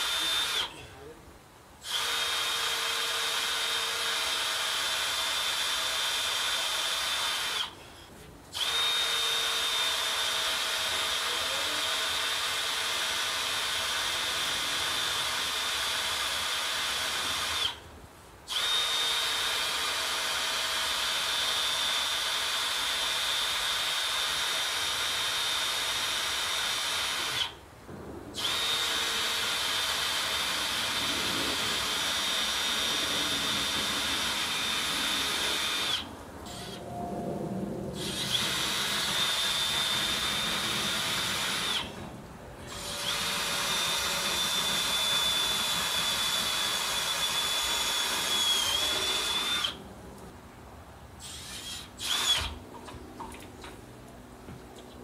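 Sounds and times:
power drill whining: 0:00.0 - 0:00.8, 0:01.8 - 0:07.8, 0:08.5 - 0:17.8, 0:18.5 - 0:27.6, 0:28.4 - 0:37.0, 0:38.0 - 0:42.0, 0:42.6 - 0:49.8, 0:51.2 - 0:52.6.

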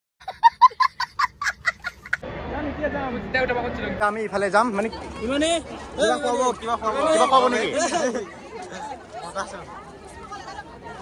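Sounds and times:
background crowd babble: 0:00.9 - 0:11.0.

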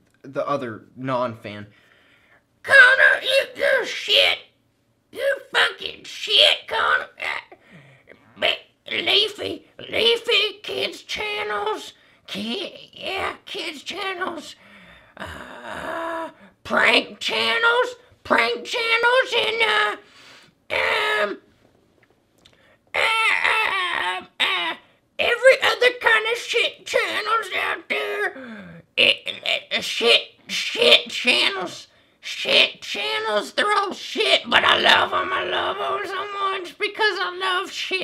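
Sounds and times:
man speaking in character voice: 0:00.2 - 0:01.7, 0:02.6 - 0:14.6, 0:15.4 - 0:20.0, 0:24.0 - 0:38.0.

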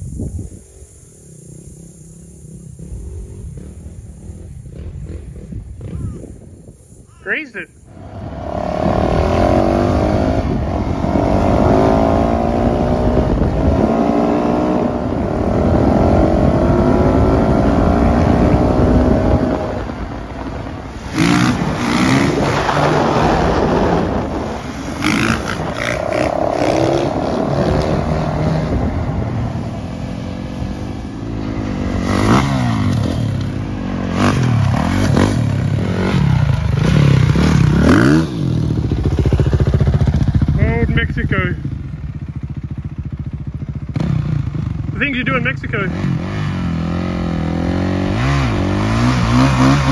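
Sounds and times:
dirt bike engines revving: 0:00.7 - 0:49.9.

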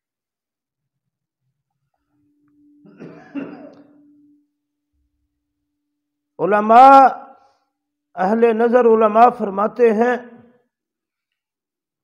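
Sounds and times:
faint steady hum: 0:01.4 - 0:06.4
man clearing his throat: 0:02.9 - 0:04.0.

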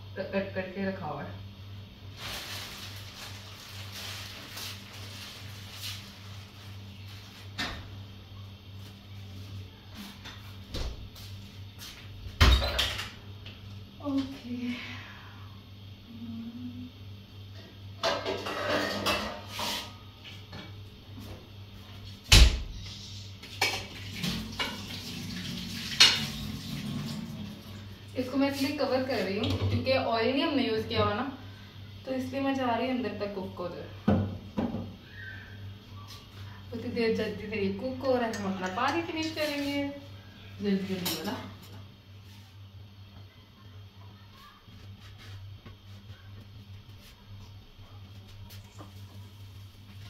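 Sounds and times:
steady low hum: 0:00.0 - 0:24.8, 0:26.9 - 0:50.0
pots and pans clattering: 0:18.0 - 0:19.9, 0:23.6 - 0:25.2, 0:25.8 - 0:27.1.

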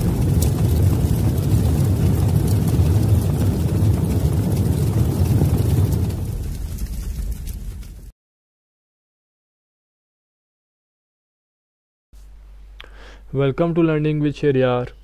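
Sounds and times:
deep low rumble: 0:00.0 - 0:08.1.

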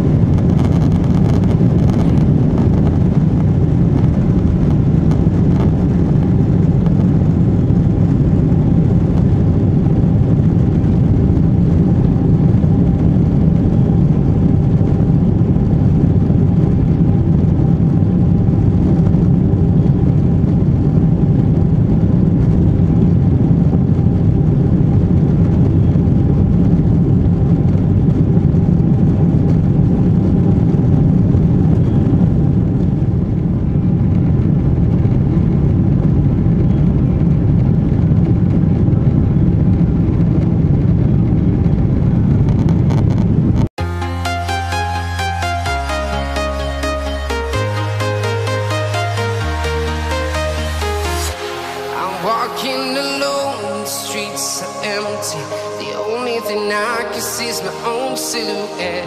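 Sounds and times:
faint steady whine: 0:00.0 - 0:41.2
jet engines roaring at takeoff: 0:00.0 - 0:43.7.

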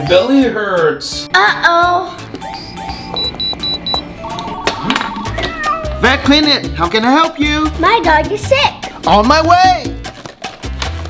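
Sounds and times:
background music: 0:00.0 - 0:11.0
phone ringing tone beeps: 0:03.2 - 0:04.1
cat meowing: 0:05.2 - 0:06.0.

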